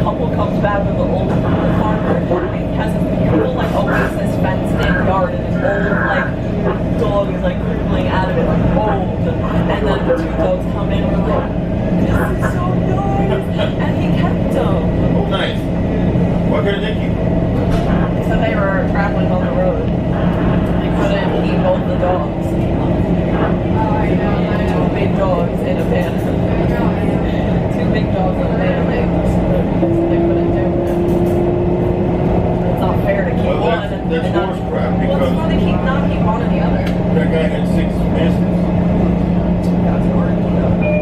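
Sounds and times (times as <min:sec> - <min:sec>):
passengers talking: 0:00.0 - 0:41.0
train rumble: 0:00.0 - 0:41.0.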